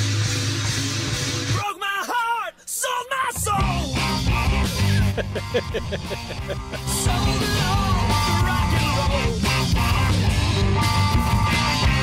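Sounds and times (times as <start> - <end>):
rock song with guitar and bass: 0.0 - 1.6, 3.4 - 12.0
man laughing: 4.6 - 8.0.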